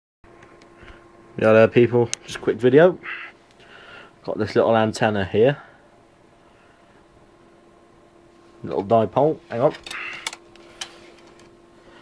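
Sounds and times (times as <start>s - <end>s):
faint steady hum: 0.3s - 12.0s.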